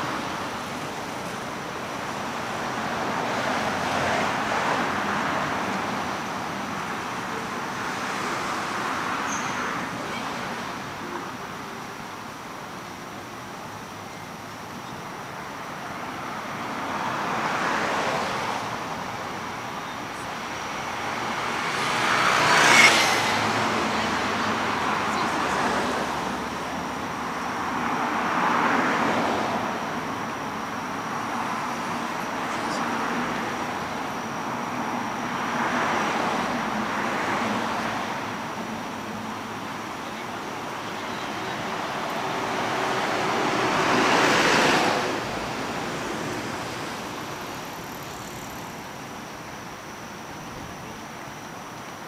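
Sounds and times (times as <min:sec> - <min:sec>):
cars passing: 0:00.0 - 0:52.0.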